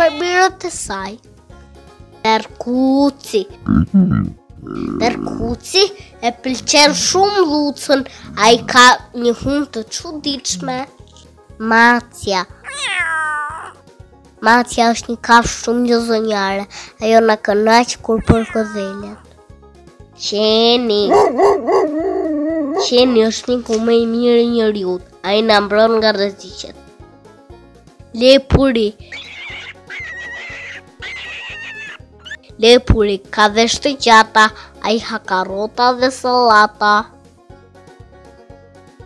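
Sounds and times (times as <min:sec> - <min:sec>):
light background music: 0:00.0 - 0:39.0
cartoon rabbit squealing: 0:12.6 - 0:13.8, 0:18.2 - 0:19.2, 0:29.1 - 0:32.4
cat meowing: 0:12.6 - 0:13.8, 0:18.2 - 0:19.0, 0:29.1 - 0:32.4.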